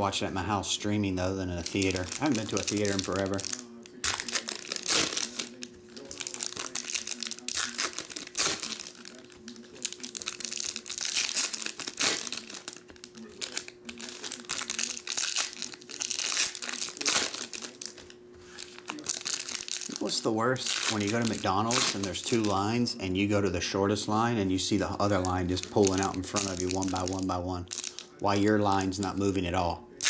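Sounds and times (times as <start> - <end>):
foil wrappers crinkling and tearing: 0.9 - 22.9, 24.1 - 29.4.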